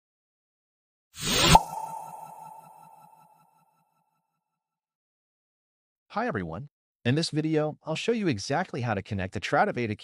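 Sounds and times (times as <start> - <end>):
rising whoosh: 1.2 - 3.1
sharp hit with ringing tone: 1.3 - 3.5.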